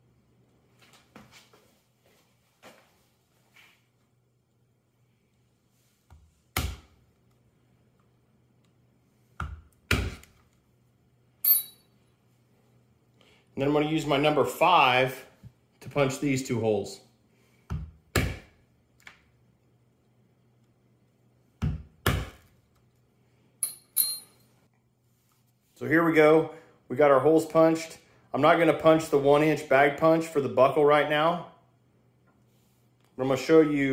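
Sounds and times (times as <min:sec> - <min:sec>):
short metallic ring: 0:11.4 - 0:12.0, 0:23.6 - 0:24.4.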